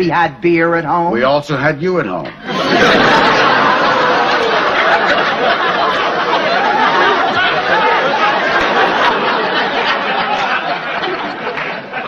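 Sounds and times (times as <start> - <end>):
studio audience laughing: 2.3 - 12.0.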